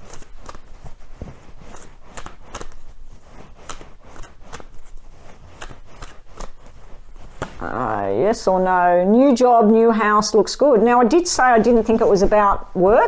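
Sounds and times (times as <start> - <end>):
playing cards being shuffled: 0.0 - 7.9.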